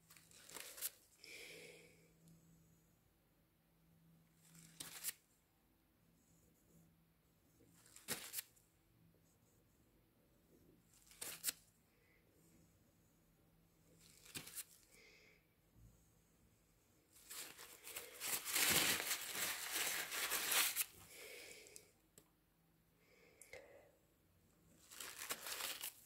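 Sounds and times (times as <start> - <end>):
crinkling rustle of material: 0.0 - 1.1, 17.1 - 21.0, 24.8 - 26.0.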